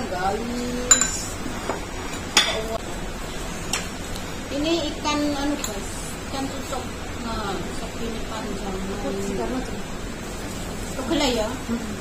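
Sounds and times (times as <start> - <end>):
metal spoon clinking ceramic dish: 0.9 - 1.3.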